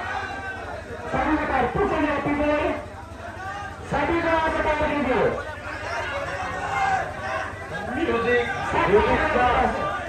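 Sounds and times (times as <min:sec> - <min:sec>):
people chattering and calling out: 0:00.0 - 0:10.0.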